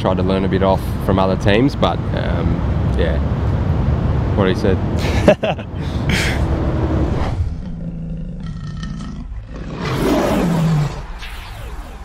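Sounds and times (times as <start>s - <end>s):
low drone: 3.9s - 12.0s
lion roar: 7.0s - 11.2s.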